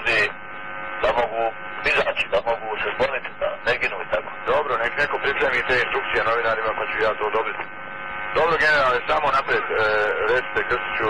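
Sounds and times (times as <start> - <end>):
man talking over telephone: 0.0 - 0.4, 1.0 - 7.7, 8.3 - 11.0.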